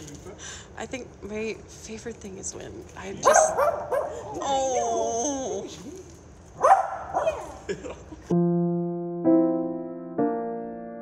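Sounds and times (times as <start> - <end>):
small dog barking: 3.2 - 4.3, 6.6 - 7.6.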